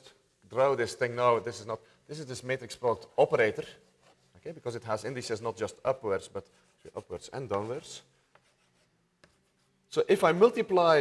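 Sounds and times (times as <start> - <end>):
chalk tapping on blackboard: 6.4 - 9.9.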